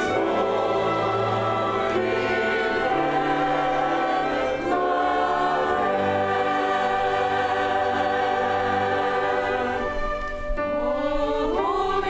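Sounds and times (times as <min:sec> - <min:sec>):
choir singing: 0:00.0 - 0:12.0
string ensemble: 0:00.0 - 0:12.0.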